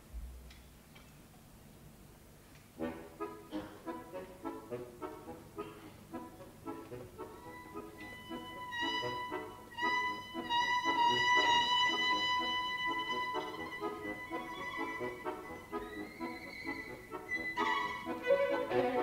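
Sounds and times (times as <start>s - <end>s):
button accordion chords: 2.8s - 19.0s
violin sustained notes: 7.4s - 19.0s.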